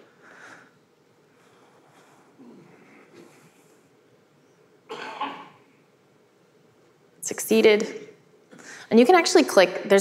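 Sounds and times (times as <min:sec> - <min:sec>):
person coughing: 0:04.9 - 0:05.6.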